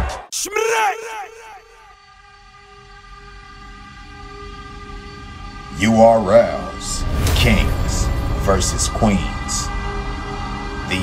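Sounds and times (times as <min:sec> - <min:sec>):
low rumbling drone: 0:03.0 - 0:11.0.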